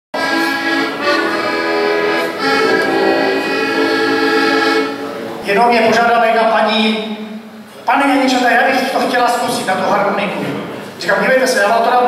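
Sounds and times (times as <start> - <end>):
button accordion playing folk tune: 0.2 - 5.1.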